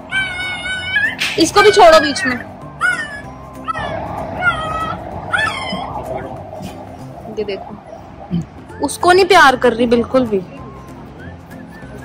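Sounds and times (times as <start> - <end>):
puppies squealing: 0.0 - 6.8.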